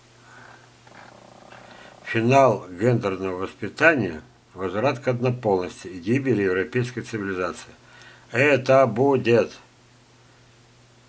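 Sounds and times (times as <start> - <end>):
faint soft sounds: 0.0 - 4.8
low steady hum: 0.0 - 11.0.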